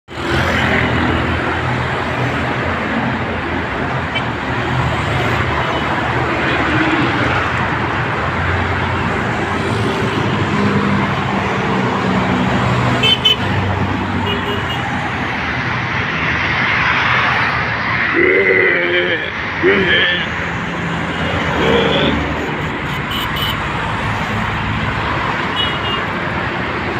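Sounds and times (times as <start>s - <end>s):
road traffic noise: 0.0s - 26.9s.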